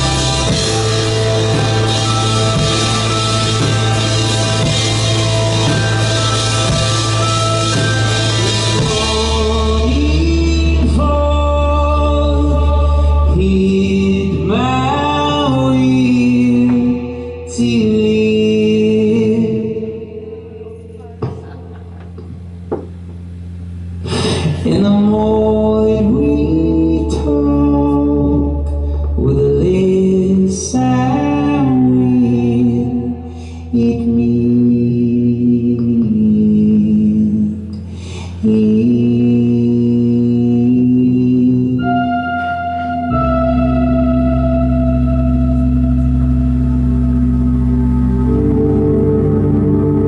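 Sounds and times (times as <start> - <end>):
sustained keyboard chord: 0.0 - 19.2, 41.8 - 50.0
band playing low drone: 0.0 - 50.0.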